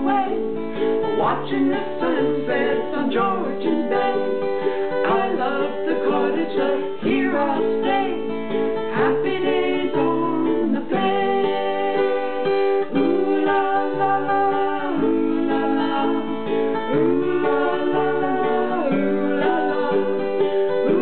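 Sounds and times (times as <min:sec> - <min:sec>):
person singing: 0:00.0 - 0:21.0
strummed acoustic guitar: 0:00.0 - 0:21.0.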